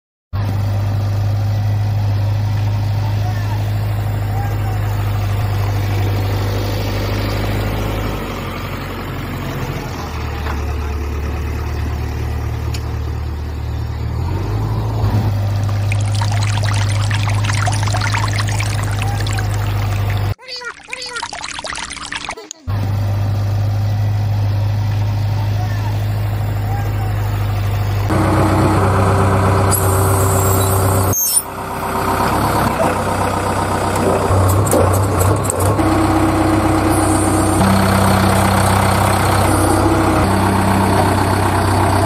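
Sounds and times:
low motor drone: 0:00.4 - 0:10.6, 0:22.7 - 0:42.0.

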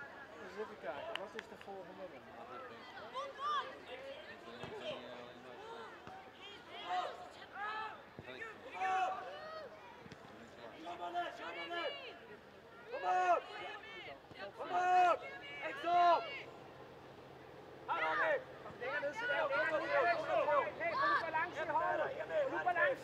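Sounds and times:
voices shouting short calls: 0:17.8 - 0:23.0.

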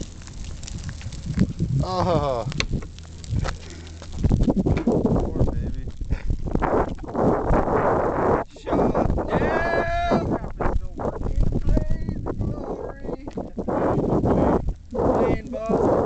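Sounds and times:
flames crackling: 0:00.0 - 0:16.0.

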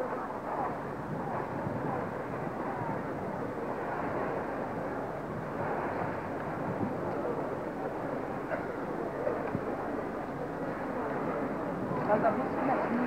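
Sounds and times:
crowd murmuring: 0:00.0 - 0:13.0.

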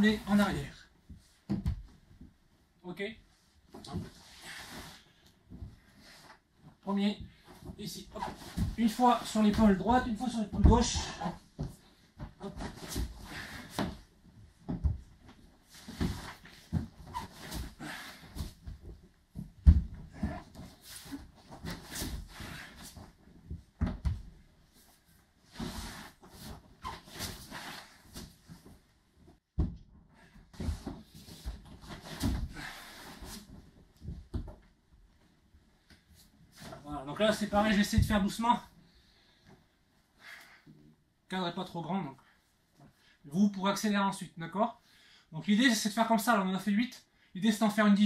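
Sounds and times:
body thumping on wooden floor: 0:01.1 - 0:02.3, 0:07.6 - 0:24.5, 0:29.5 - 0:32.8, 0:34.0 - 0:34.7.

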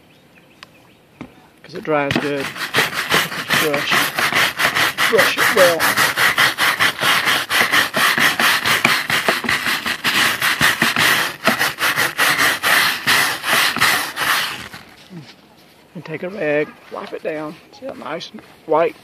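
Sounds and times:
stiff brush scrubbing: 0:01.7 - 0:15.3.

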